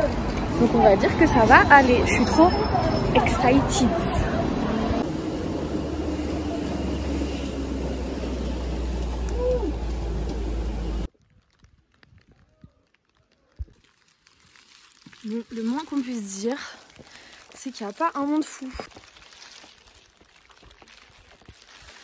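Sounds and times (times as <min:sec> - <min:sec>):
road and wind noise: 0:00.0 - 0:12.8.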